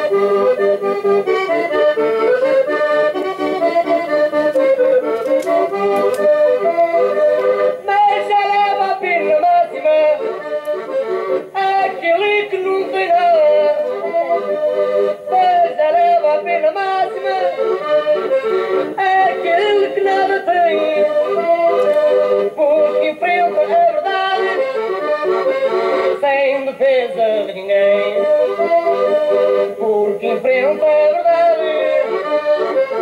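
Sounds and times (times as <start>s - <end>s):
accordion playing folk tune: 0.0s - 33.0s.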